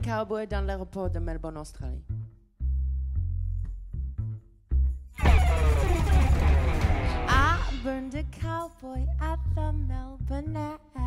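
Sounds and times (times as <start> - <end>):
double bass plucked low notes: 0.0 - 11.0
electric guitar: 5.2 - 7.8.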